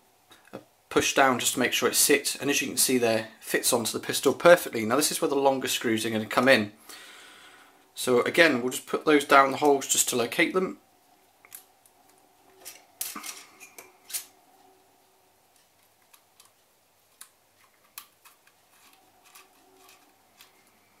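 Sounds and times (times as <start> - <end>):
small metallic clicks and scrapes: 11.5 - 14.4, 15.5 - 21.0.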